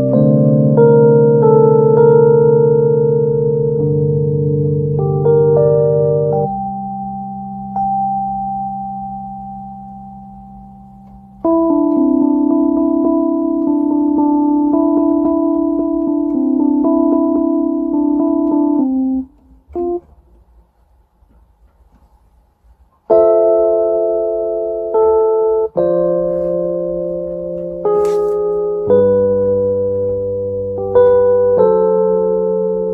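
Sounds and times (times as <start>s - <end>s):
piano chords: 0.0s - 32.9s.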